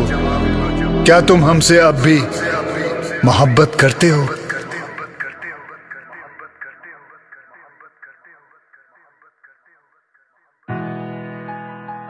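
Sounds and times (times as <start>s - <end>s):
sung vocal phrase with echo: 0.0s - 10.6s.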